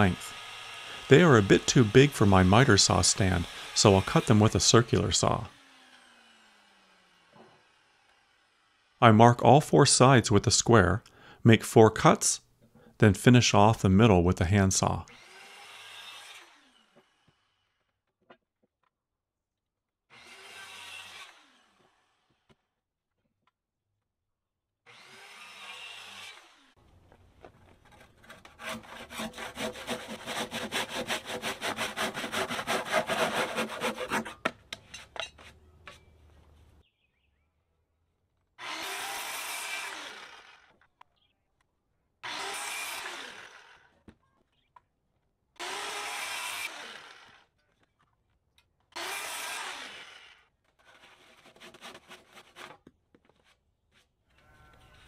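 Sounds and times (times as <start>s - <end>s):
handsaw sawing timber: 0.0s - 8.8s, 14.8s - 17.7s, 20.1s - 22.4s, 24.9s - 26.8s, 27.6s - 35.6s, 38.6s - 40.7s, 42.2s - 43.9s, 45.6s - 47.5s, 48.9s - 52.8s
circular saw cutting: 0.0s - 9.0s, 15.1s - 17.6s, 20.1s - 22.4s, 24.9s - 26.8s, 27.8s - 35.4s, 38.6s - 40.7s, 42.2s - 43.9s, 45.6s - 47.4s, 49.0s - 51.3s.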